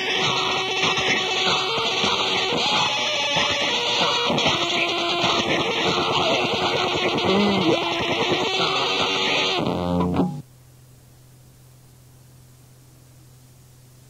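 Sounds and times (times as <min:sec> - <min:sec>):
loud experimental band music: 0:00.2 - 0:10.4
faint low hum: 0:09.6 - 0:14.0.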